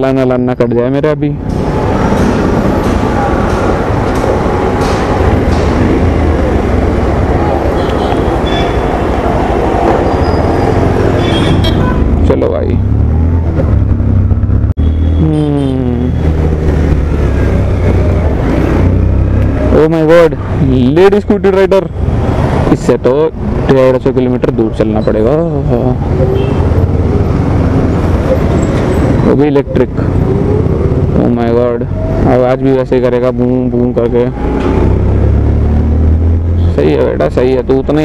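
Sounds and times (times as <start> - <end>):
motorcycle engine running: 11.6 - 19.7.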